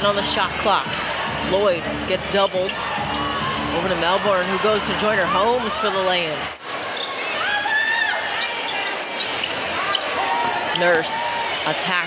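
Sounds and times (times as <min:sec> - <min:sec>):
crowd noise: 0:00.0 - 0:12.0
sneakers squeaking on hardwood: 0:00.6 - 0:03.3, 0:06.5 - 0:07.5, 0:08.3 - 0:11.8.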